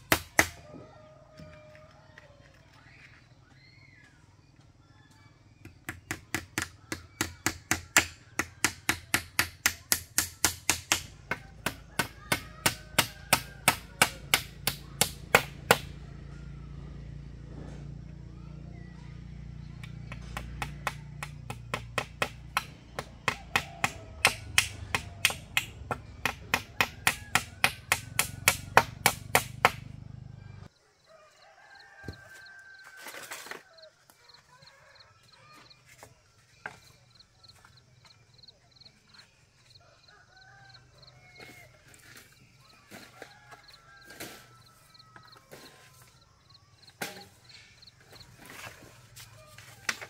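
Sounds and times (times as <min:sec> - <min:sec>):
knocks of bamboo being handled: 0:00.0 - 0:01.6, 0:05.6 - 0:16.0, 0:19.8 - 0:29.9, 0:46.9 - 0:50.0.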